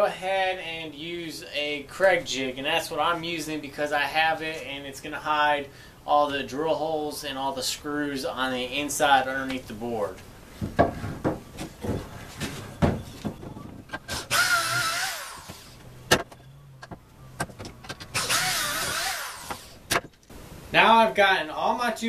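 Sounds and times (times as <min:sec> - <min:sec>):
drill whining into wood: 0:14.1 - 0:15.8, 0:18.1 - 0:19.8.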